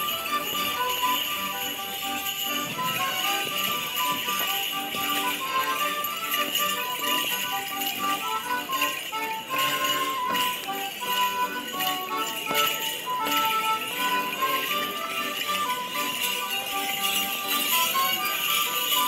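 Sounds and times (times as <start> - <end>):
folk dance tune: 0.0 - 19.0
jingling leg bells: 0.0 - 19.0.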